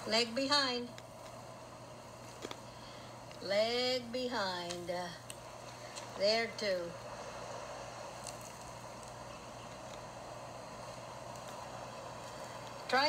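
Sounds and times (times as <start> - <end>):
faint low hum: 0.0 - 13.0
outdoor background noise: 0.0 - 13.0.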